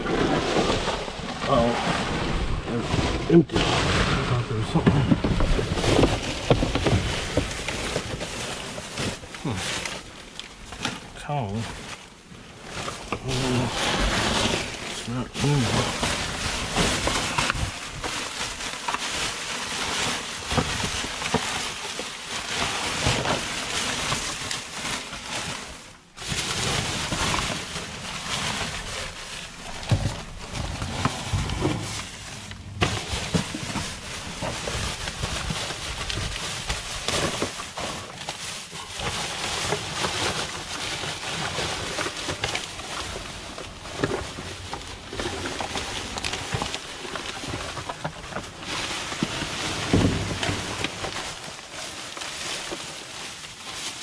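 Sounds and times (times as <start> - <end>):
plastic bags rustling: 0.0 - 54.0
small crackles and knocks: 0.0 - 54.0.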